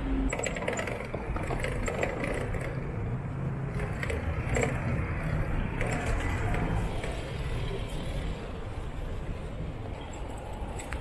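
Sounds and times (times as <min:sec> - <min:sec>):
low hum of city traffic: 0:00.0 - 0:11.0
bicycle freewheel ticking and rattling: 0:00.3 - 0:07.7.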